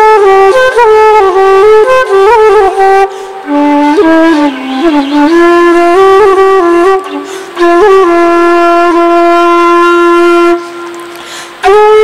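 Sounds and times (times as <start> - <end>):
bamboo flute long note: 0.0 - 12.0.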